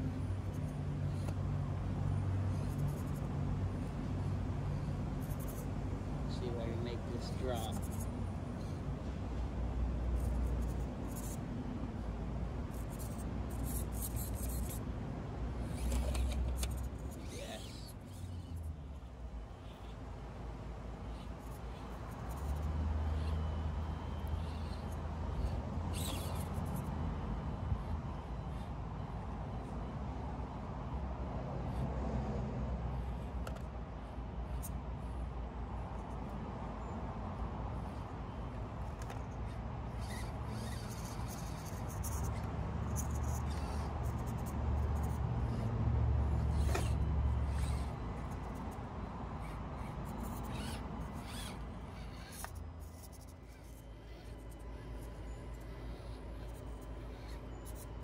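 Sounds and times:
small electric motor and gears: 0:00.0 - 0:09.0, 0:09.8 - 0:14.9, 0:15.5 - 0:29.8, 0:32.9 - 0:36.4, 0:37.7 - 0:58.0
toy truck clicking against stone: 0:07.6 - 0:08.1, 0:10.2 - 0:11.4, 0:12.7 - 0:14.8, 0:15.6 - 0:18.6, 0:23.2 - 0:26.9, 0:38.8 - 0:45.2, 0:46.3 - 0:48.8, 0:49.4 - 0:58.0.

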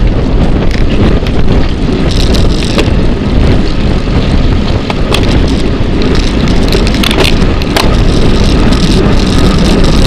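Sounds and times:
road noise: 0:00.0 - 0:10.0
wind buffeting microphone: 0:00.0 - 0:10.0
short clicks and rattles: 0:02.1 - 0:02.9, 0:04.9 - 0:10.0.

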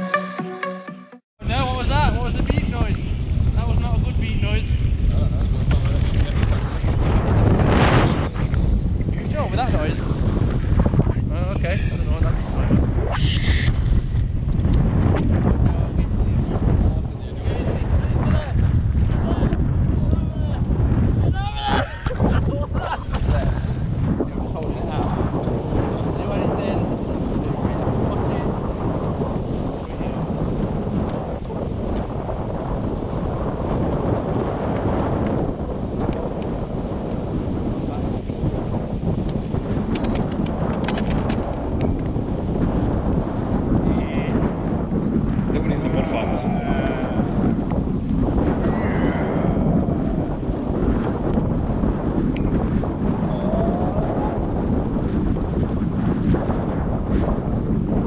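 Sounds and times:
wind buffeting microphone: 0:01.4 - 0:58.0
faint voice-like calls: 0:48.6 - 0:49.7.

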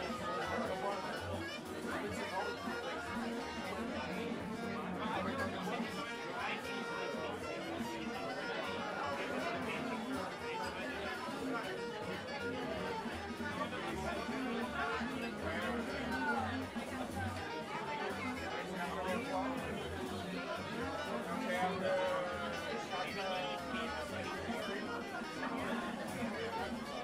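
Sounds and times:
many people talking: 0:00.0 - 0:27.0.

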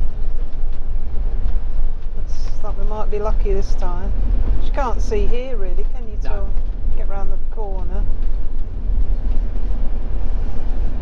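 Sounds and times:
engine and road noise rumble: 0:00.0 - 0:11.0.

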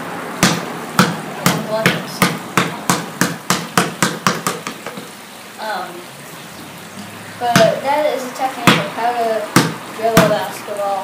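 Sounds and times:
basketball bouncing on concrete: 0:00.4 - 0:05.1, 0:07.4 - 0:07.8, 0:08.6 - 0:10.4.

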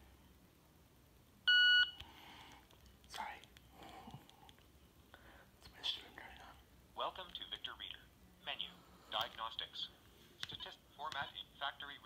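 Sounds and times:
soft clicks: 0:02.0 - 0:04.7.

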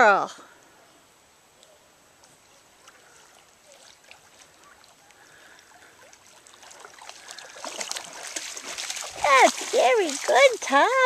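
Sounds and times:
dog wading with light splashing: 0:01.6 - 0:11.0
water lapping and trickling: 0:01.6 - 0:11.0.

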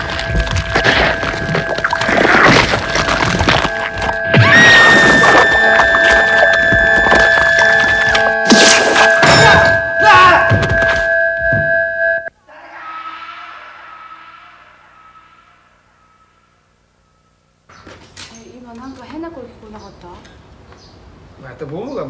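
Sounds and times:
horror film music: 0:00.0 - 0:17.1
quiet held tone: 0:00.0 - 0:17.8.

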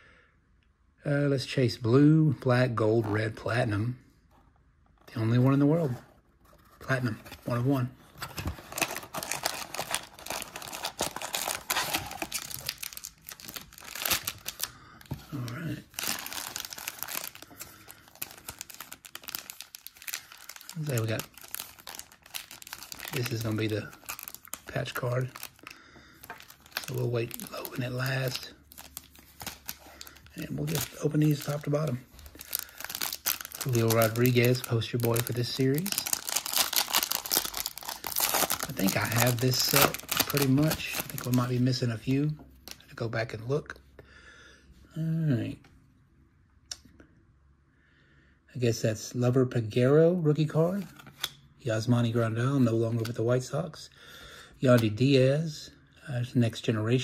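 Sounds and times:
wrappers crinkling: 0:06.9 - 0:41.8.

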